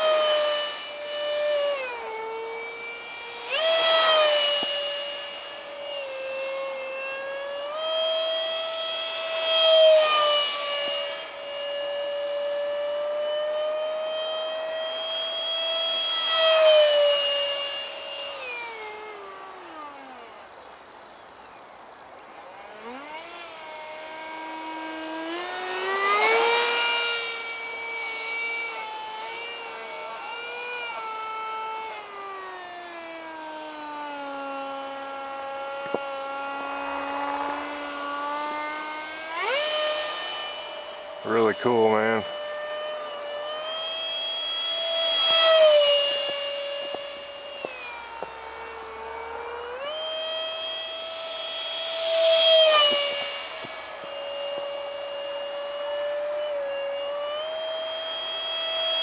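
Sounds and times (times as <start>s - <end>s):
electric ducted fan whining: 0.0s - 59.0s
jet rushing past: 36.5s - 59.0s.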